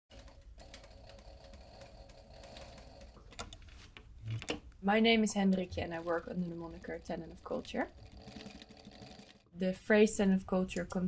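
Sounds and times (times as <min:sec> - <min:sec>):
sewing machine humming: 0:00.1 - 0:03.3, 0:05.1 - 0:09.6.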